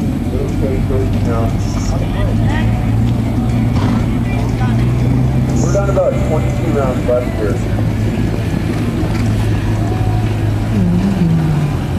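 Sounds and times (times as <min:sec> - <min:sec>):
low motor hum: 0:00.0 - 0:11.9
faint voices: 0:00.1 - 0:11.9.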